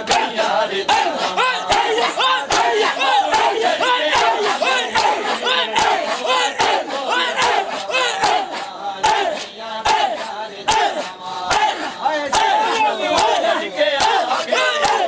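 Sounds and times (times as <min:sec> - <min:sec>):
crowd shouting rhythmically: 0:00.0 - 0:15.0
hands slapping on chests: 0:00.0 - 0:15.0.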